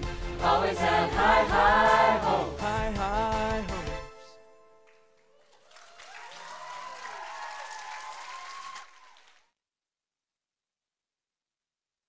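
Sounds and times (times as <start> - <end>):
audience applauding: 5.2 - 9.5
voices cheering: 5.4 - 9.4.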